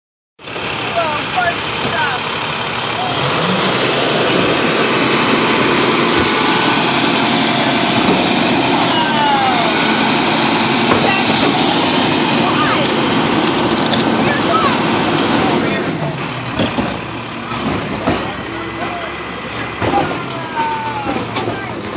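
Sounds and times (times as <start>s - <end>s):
garbage truck diesel engine running: 0.4s - 21.9s.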